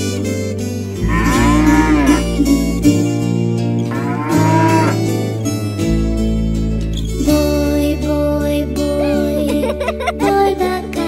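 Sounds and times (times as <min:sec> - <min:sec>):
instrumental children's song: 0:00.0 - 0:11.0
bull mooing: 0:01.0 - 0:02.7, 0:03.9 - 0:05.3.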